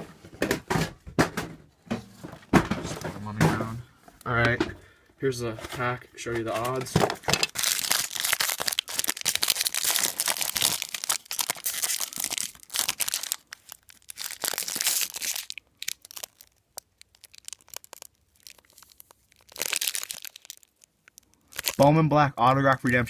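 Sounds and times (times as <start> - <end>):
foil wrapper crinkling: 7.4 - 21.9.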